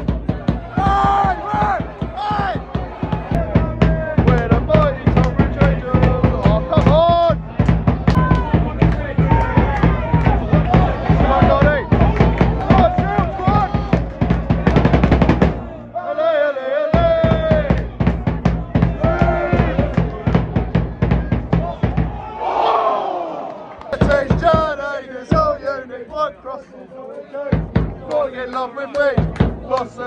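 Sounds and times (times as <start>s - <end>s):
steady drum beat: 0.0s - 15.8s, 16.9s - 22.5s, 24.0s - 25.8s, 27.5s - 28.3s, 29.0s - 30.0s
singing voices: 0.0s - 30.0s.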